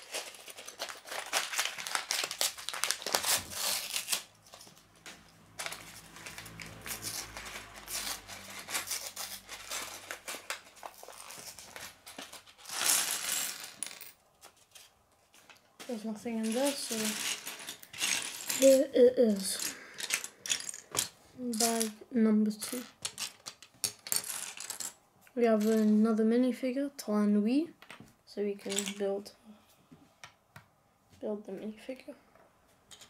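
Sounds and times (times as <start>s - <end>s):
paper bag crinkling and rustling: 0.0s - 12.9s
plastic bricks clattering on wood: 16.4s - 18.8s, 19.5s - 21.9s, 22.7s - 25.0s, 28.7s - 29.0s.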